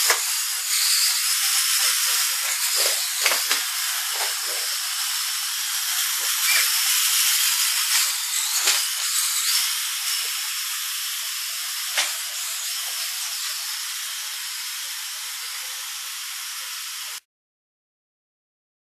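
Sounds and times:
robot motors whirring: 0.0 - 17.2.

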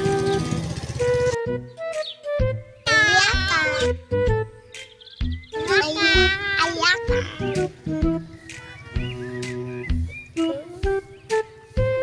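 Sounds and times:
background music with bass: 0.0 - 12.0.

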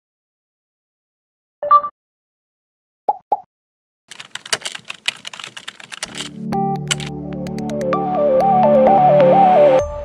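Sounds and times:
keyboard typing clicks: 4.1 - 7.1
synthesizer music: 6.4 - 10.0.

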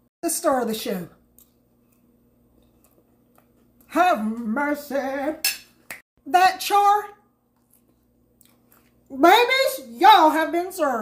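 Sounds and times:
faint chewing: 1.3 - 4.5, 7.4 - 9.1.

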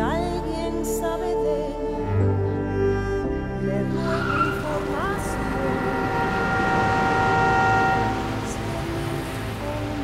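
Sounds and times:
car tyres squealing: 3.8 - 10.0.

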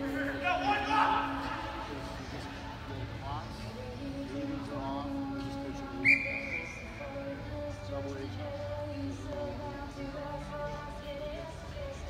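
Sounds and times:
referee's whistle blast: 6.0 - 6.9.

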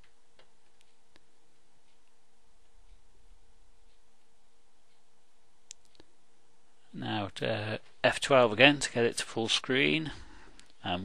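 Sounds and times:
faint hiss and hum: 0.0 - 11.0.

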